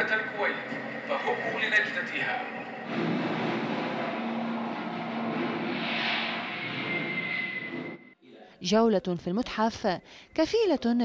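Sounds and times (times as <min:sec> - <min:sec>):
aircraft engine drone: 0:00.0 - 0:08.2.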